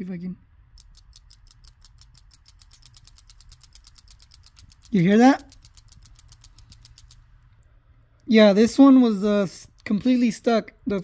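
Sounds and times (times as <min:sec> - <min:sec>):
valve rattling in light clicks: 0:00.8 - 0:07.6.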